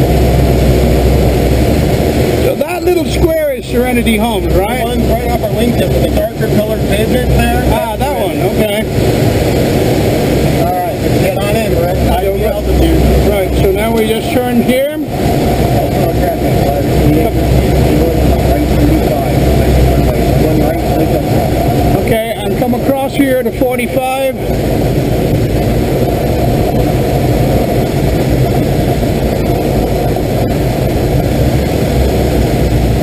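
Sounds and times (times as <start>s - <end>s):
air rushing around glider: 0.0s - 33.0s.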